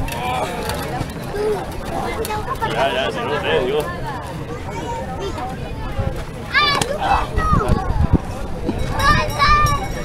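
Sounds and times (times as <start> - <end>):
spectators chattering: 0.0 - 10.0.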